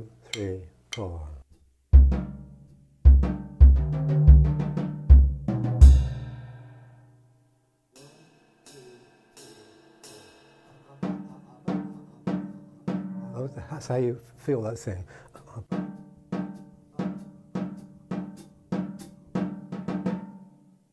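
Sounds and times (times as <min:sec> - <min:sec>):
jazz drum kit solo: 0:01.9 - 0:06.6, 0:08.0 - 0:14.0, 0:15.6 - 0:20.5.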